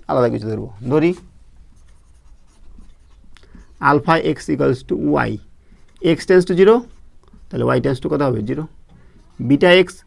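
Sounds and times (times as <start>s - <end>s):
marker scratching on whiteboard: 0.8s - 10.0s.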